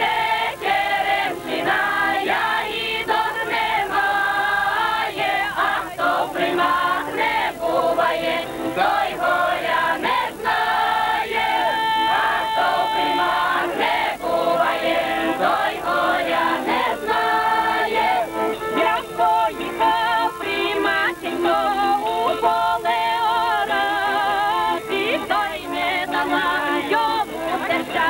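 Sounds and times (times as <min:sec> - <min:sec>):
women singing folk song: 0:00.0 - 0:28.0.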